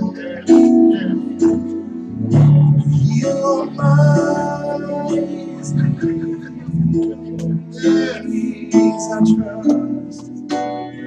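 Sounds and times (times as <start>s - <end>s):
amplified worship band music: 0.0s - 11.0s.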